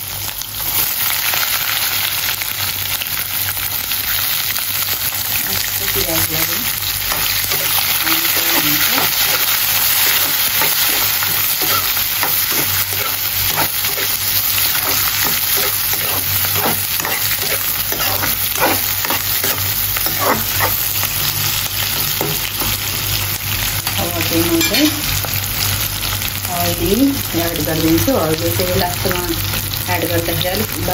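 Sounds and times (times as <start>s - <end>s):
onions sizzling in hot oil: 0.0s - 30.9s
metal ladle scraping pan: 7.1s - 23.1s.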